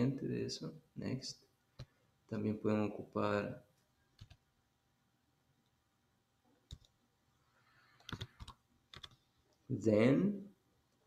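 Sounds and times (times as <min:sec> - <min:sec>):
computer keyboard clicks: 0:04.2 - 0:04.4, 0:06.7 - 0:07.0, 0:08.0 - 0:09.2.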